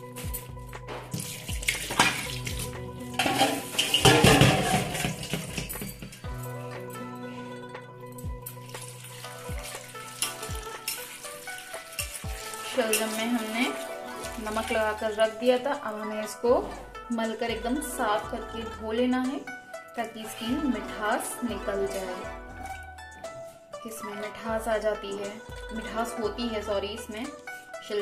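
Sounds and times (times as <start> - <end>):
background music: 0.0 - 28.0
steel bowl knocking and clinking: 0.3 - 7.0, 8.2 - 14.9.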